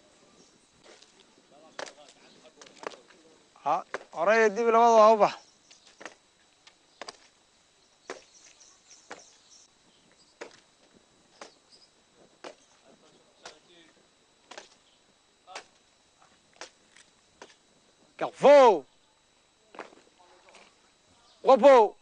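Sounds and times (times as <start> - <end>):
soldiers marching on dirt: 0.8 - 14.9, 19.6 - 21.6.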